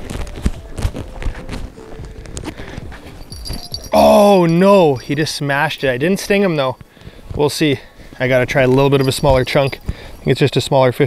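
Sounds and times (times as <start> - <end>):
footsteps crunching in snow: 0.0 - 5.0.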